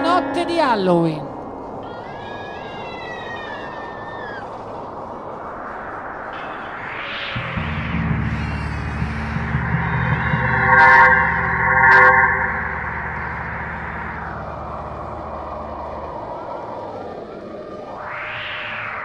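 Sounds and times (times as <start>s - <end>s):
low synthesizer drone: 4.8s - 19.0s
whooshing synth sweep: 4.8s - 19.0s
synthesizer chord stabs: 7.4s - 16.8s.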